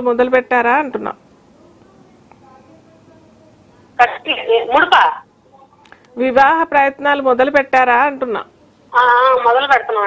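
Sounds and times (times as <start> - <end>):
person speaking over telephone: 4.0 - 5.2, 9.0 - 10.0.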